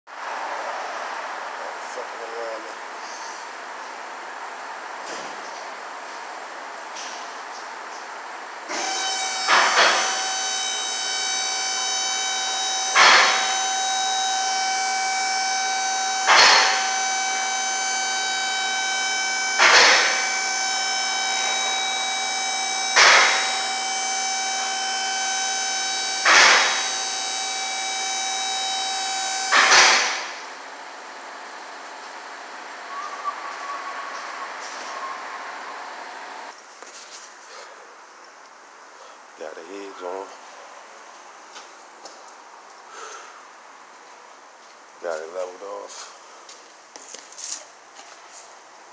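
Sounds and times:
lift motor whining: 0:08.6 - 0:36.6
sharp clack: 0:13.0 - 0:13.6, 0:16.3 - 0:16.9, 0:19.6 - 0:20.2, 0:23.0 - 0:23.4, 0:26.2 - 0:26.8, 0:29.5 - 0:30.4.

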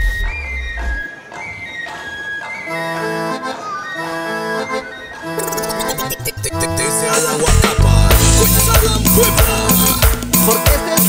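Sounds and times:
accordion chords: 0:02.4 - 0:11.0.

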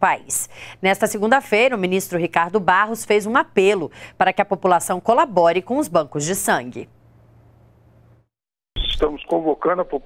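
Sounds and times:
man talking: 0:08.8 - 0:10.0.

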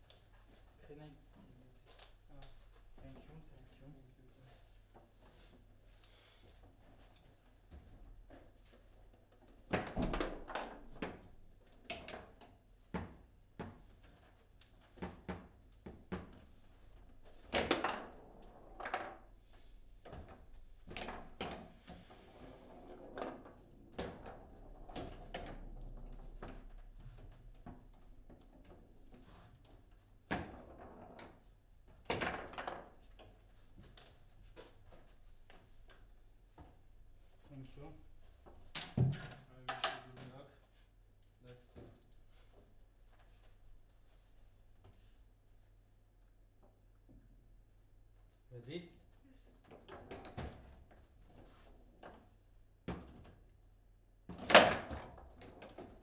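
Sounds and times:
foosball knocks and rattles: 0:09.7 - 0:11.3, 0:17.2 - 0:19.4, 0:22.4 - 0:29.0, 0:30.3 - 0:33.4.

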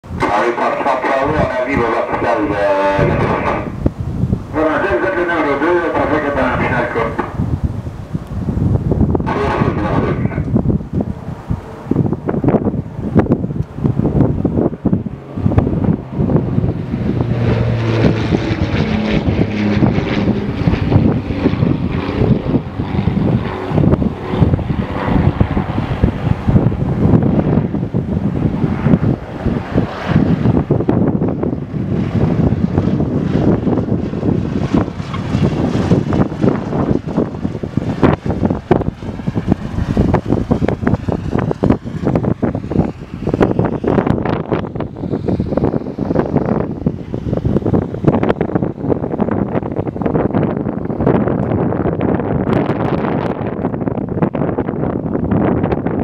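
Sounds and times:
radial aircraft engine running: 0:00.0 - 0:56.0
wind buffeting microphone: 0:00.0 - 0:56.0.

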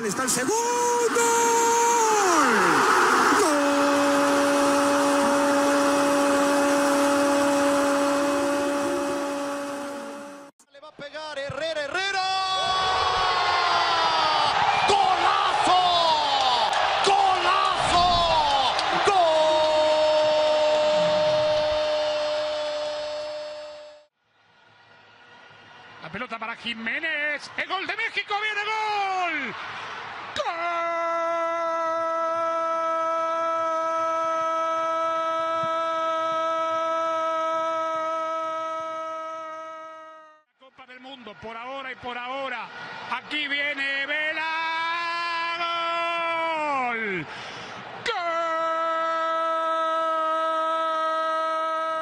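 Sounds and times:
excited commentary: 0:00.0 - 0:03.5, 0:26.0 - 0:29.6
commentator's drawn-out goal cry: 0:00.0 - 0:10.3, 0:14.1 - 0:23.9
stadium crowd noise: 0:00.0 - 0:52.0.

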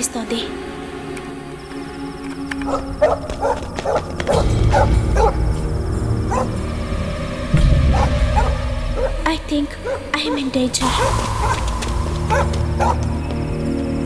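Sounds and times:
tense film music: 0:00.0 - 0:14.0
dog barking: 0:02.7 - 0:05.4, 0:06.3 - 0:06.6, 0:07.9 - 0:09.2, 0:09.8 - 0:11.7, 0:12.3 - 0:13.1.

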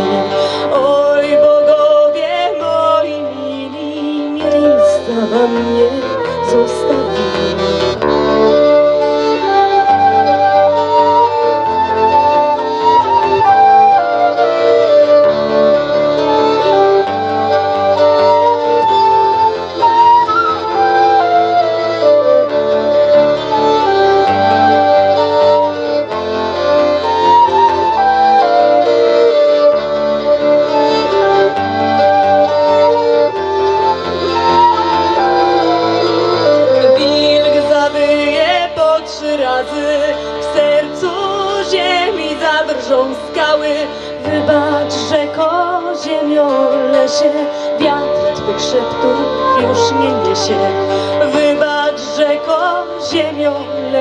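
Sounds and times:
accordion: 0:00.0 - 0:54.0
flute and violin melody: 0:00.0 - 0:54.0.

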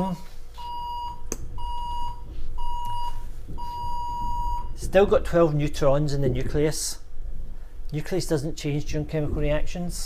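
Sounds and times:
electronic beeper beeping: 0:00.6 - 0:04.8.

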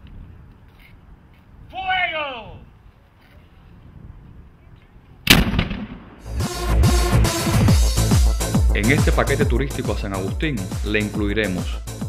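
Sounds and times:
cannon blast with echo: 0:05.3 - 0:06.3.

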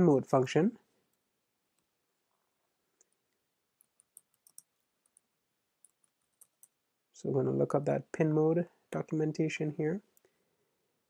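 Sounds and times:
computer keyboard keystrokes: 0:03.9 - 0:05.2.

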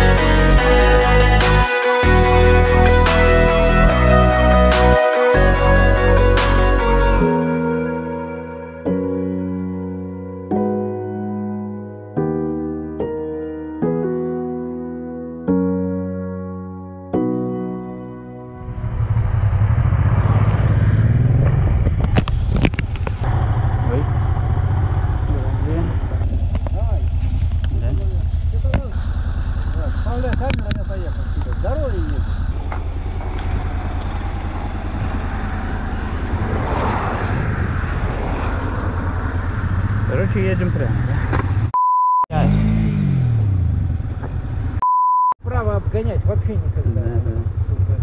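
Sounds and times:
motorcycle engine idling: 0:22.9 - 0:36.2, 0:45.4 - 0:48.0
steady bleep: 0:28.9 - 0:32.6, 0:41.7 - 0:42.3, 0:44.8 - 0:45.4.

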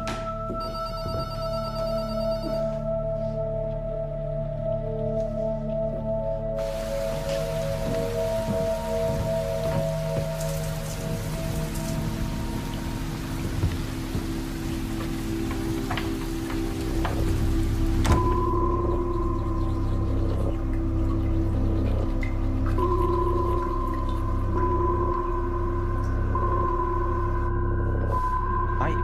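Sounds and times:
ambient music of long held tones: 0:00.0 - 0:29.0
steady rain-like hiss: 0:06.6 - 0:27.5.

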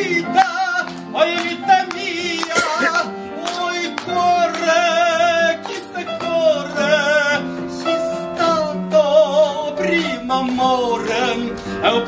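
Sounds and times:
man singing with vibrato: 0:00.0 - 0:12.0
upright piano accompaniment: 0:00.0 - 0:12.0.

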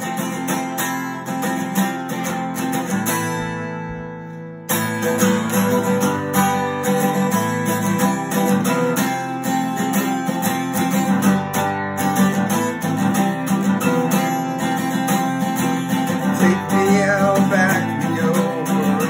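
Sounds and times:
acoustic guitar strumming chords: 0:00.0 - 0:19.0.

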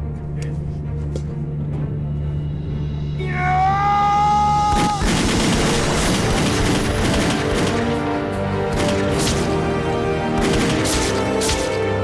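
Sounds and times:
background music with held notes: 0:00.0 - 0:12.0
rifle gunfire volley: 0:04.7 - 0:08.1, 0:08.7 - 0:09.6, 0:10.4 - 0:11.9.

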